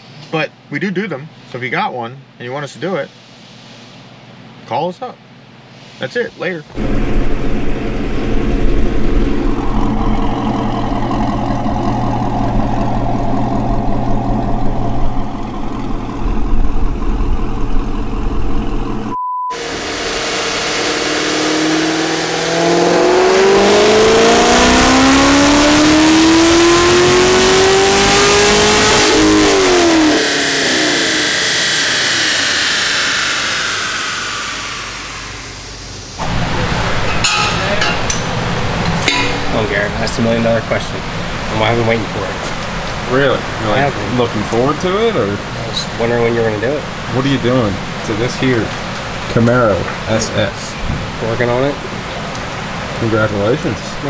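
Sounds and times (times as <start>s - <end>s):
car engine full-throttle pull: 6.8s - 36.9s
engine running steadily: 6.8s - 54.0s
short beep: 19.1s - 19.6s.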